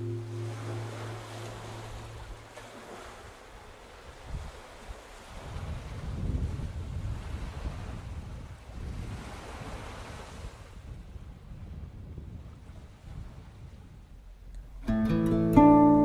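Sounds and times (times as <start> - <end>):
rushing surf-like noise: 0.0 - 3.5.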